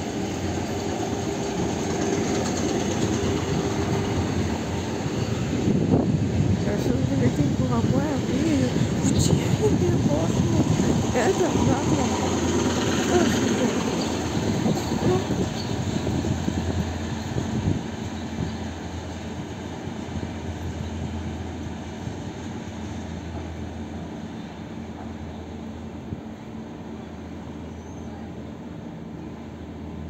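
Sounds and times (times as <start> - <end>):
train rumbling over rails: 0.0 - 30.0.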